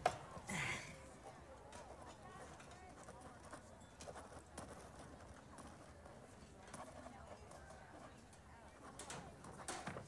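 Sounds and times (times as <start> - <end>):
soft background murmur: 0.0 - 10.0.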